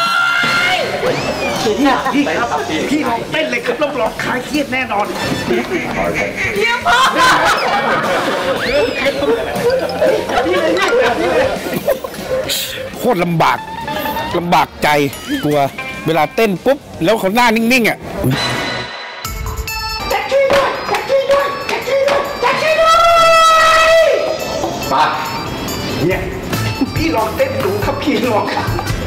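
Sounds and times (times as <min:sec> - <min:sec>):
group of people chattering: 0:00.7 - 0:18.3.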